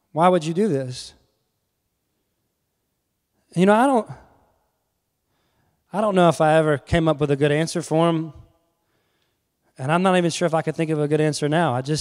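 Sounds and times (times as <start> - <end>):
man speaking: 0.1 - 1.3, 3.5 - 4.4, 5.9 - 8.5, 9.7 - 12.0.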